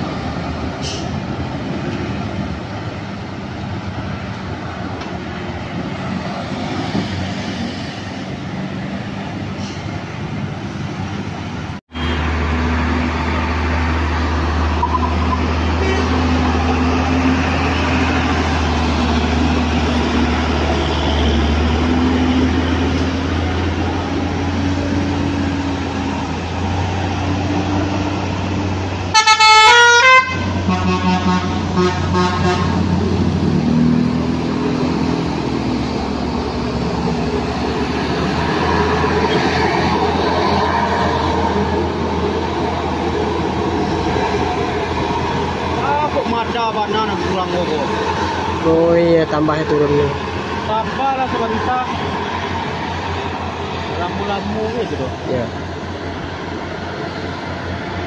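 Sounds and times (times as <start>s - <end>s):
diesel engines climbing: 0.0s - 58.0s
multi-tone bus horn: 14.8s - 16.4s, 29.1s - 33.1s.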